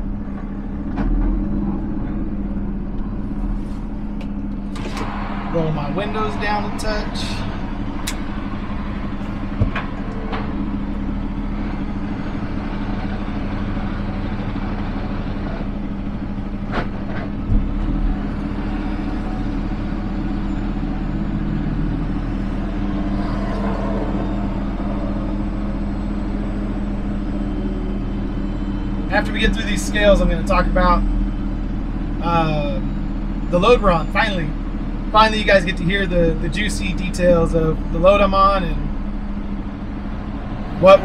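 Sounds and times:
diesel truck engine running: 0.0 - 41.0.

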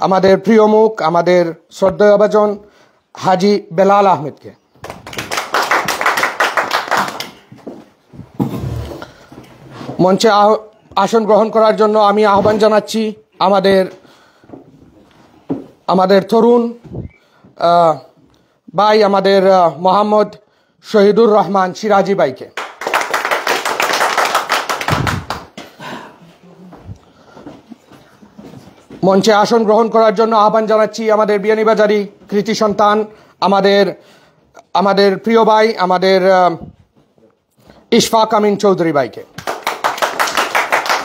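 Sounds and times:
people applauding: 4.8 - 7.7, 22.5 - 25.7, 39.4 - 41.0
people clapping: 4.8 - 7.8, 22.5 - 25.9, 39.3 - 41.0.

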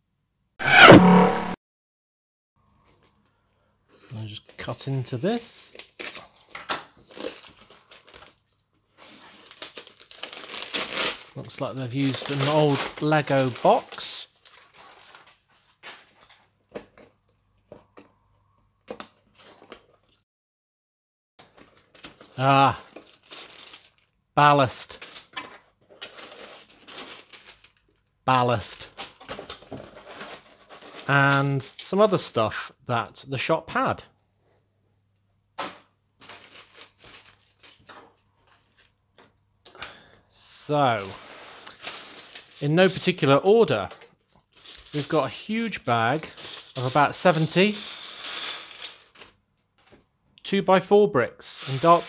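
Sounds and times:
plastic bags rustling: 2.7 - 17.3, 21.4 - 24.2, 24.8 - 28.1, 28.9 - 31.2, 36.2 - 39.0, 41.0 - 50.0, 51.5 - 52.0
paper and tape tearing: 9.0 - 11.4, 12.0 - 14.0, 51.6 - 52.0.

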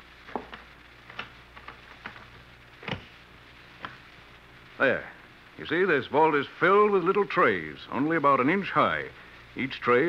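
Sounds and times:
low recording hum: 0.0 - 10.0.

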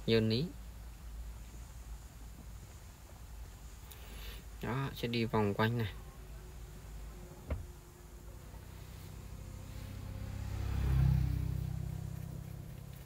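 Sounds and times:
speedboat engine humming: 5.8 - 12.5.

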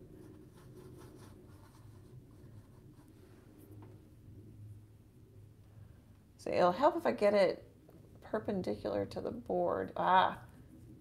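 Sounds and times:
paintbrush scratching on paper: 0.0 - 3.3
low steady hum: 0.0 - 11.0.

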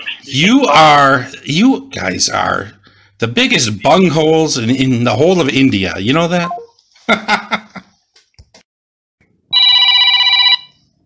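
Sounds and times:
telephone ringing: 9.5 - 10.9.

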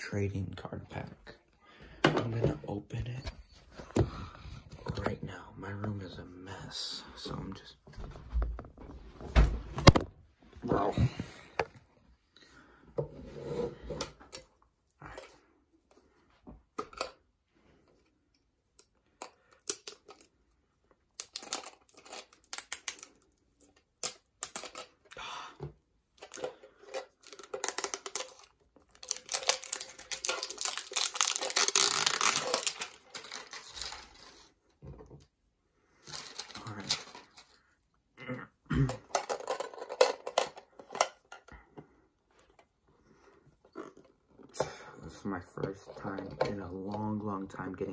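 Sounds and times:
card pack packaging tearing: 27.3 - 34.3.

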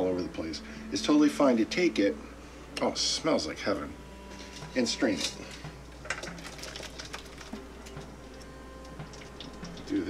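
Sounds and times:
filling poured into strainer: 6.0 - 7.6.

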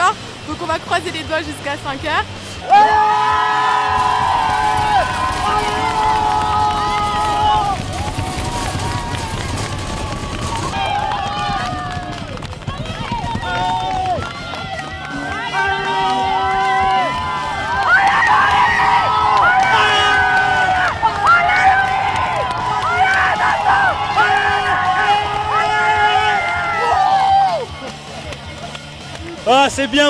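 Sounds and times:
crowd noise: 0.0 - 30.0
people yelling: 2.6 - 27.7.

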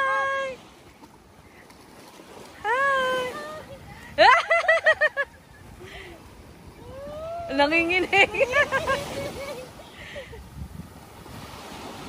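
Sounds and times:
small waves on the shore: 0.0 - 12.0.

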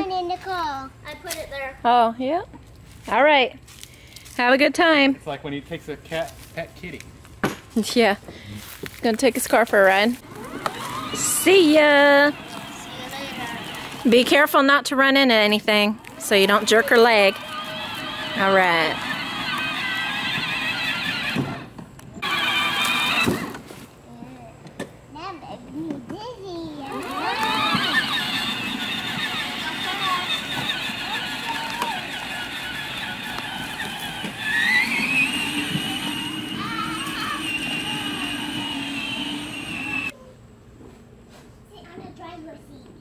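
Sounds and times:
children's voices: 10.2 - 14.1, 25.2 - 40.4
electric motors whining: 10.2 - 14.7, 15.7 - 23.6, 26.9 - 40.1.

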